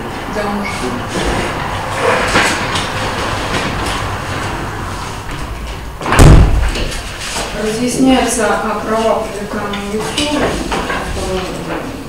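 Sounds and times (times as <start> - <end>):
rustling and shuffling movement: 0.4 - 12.0
loud low thump: 5.2 - 6.9.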